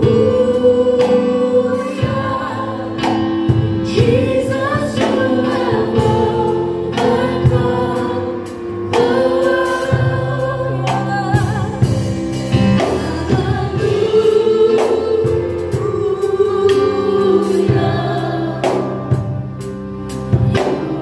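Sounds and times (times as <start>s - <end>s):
group singing gospel song: 0.0s - 19.6s, 20.3s - 21.0s
sustained backing chords: 0.0s - 21.0s.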